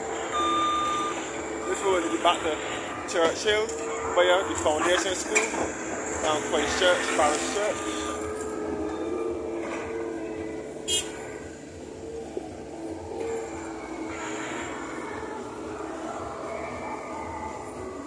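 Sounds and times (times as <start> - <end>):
vehicles driving past: 0.0 - 18.0.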